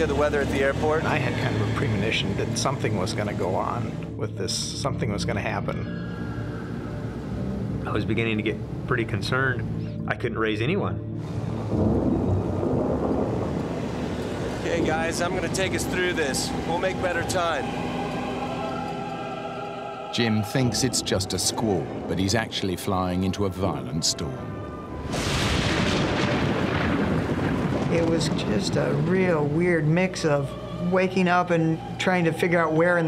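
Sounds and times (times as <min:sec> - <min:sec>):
low wind and storm noise: 0:10.4 - 0:33.0
rumbling noise: 0:11.2 - 0:17.8, 0:24.9 - 0:30.1.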